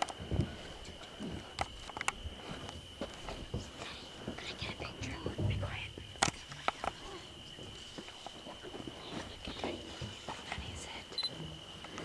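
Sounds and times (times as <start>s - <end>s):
people whispering: 2.3s - 11.4s.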